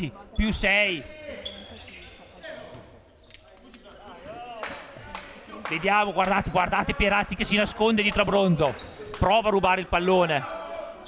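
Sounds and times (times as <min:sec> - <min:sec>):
reverberant hall noise: 0:00.0 - 0:11.0.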